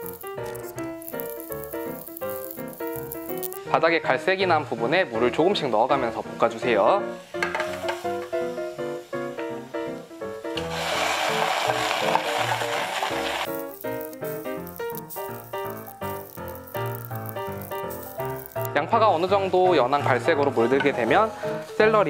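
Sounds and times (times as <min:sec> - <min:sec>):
onions sizzling in butter: 0:00.0 - 0:03.7, 0:07.1 - 0:22.0
background music: 0:00.0 - 0:22.0.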